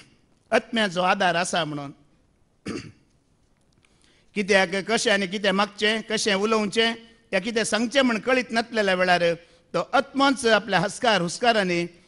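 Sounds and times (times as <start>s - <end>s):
man clearing throat: 2.6s - 3.1s.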